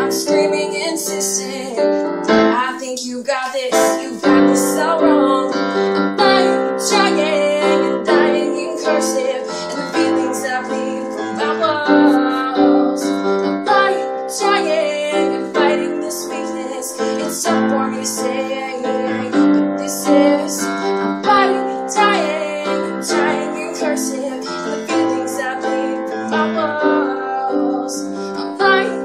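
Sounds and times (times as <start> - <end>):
digital piano chords and melody: 0.0 - 29.0
woman singing wordlessly: 0.0 - 29.0.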